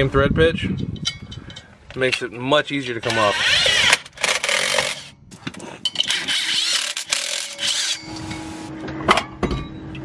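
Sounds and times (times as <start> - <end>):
brake rotor scraping: 6.0 - 8.7.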